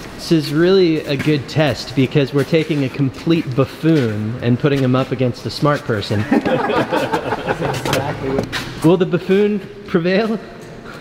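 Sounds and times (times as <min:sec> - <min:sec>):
men talking: 0:00.2 - 0:10.6.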